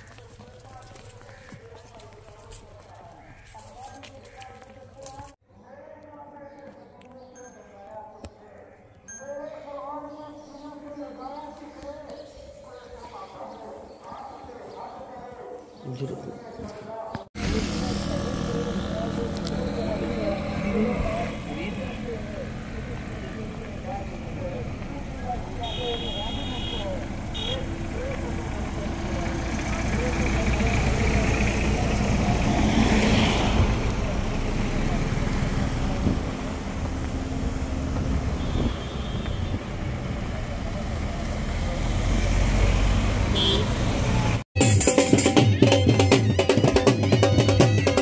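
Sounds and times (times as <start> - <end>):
vehicle passing close: 17.4 - 25.6, 27.0 - 38.4, 39.5 - 44.4
car engines running: 17.4 - 44.4.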